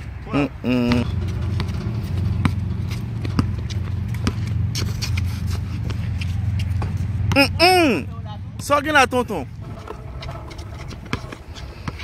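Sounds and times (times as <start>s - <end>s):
basketball dribbling on hard court: 0.9s - 7.5s, 9.6s - 12.0s
steady low rumble: 1.0s - 7.2s, 9.4s - 12.0s.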